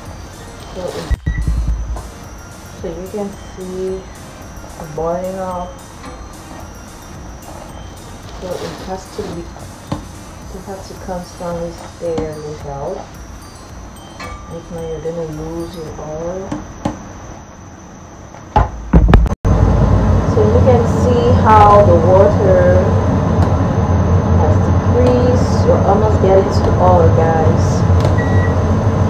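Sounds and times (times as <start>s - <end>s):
steady low rumble: 0.0s - 16.4s, 19.0s - 29.0s.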